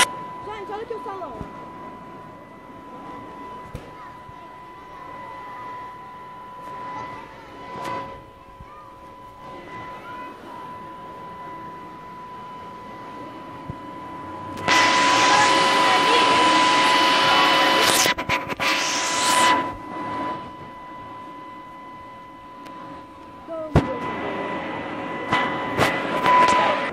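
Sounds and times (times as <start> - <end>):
high-pitched hum: 0.0 - 26.9.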